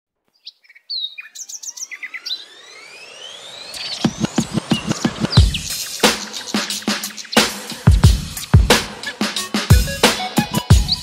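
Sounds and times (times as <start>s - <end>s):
birds chirping: 0.2s - 11.0s
smooth rising tone: 1.4s - 7.8s.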